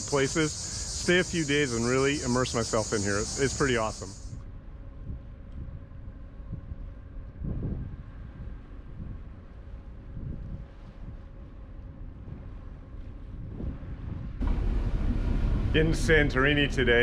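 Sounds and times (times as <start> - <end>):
faint steady hum: 0.0 - 17.0
wind buffeting microphone: 0.0 - 17.0.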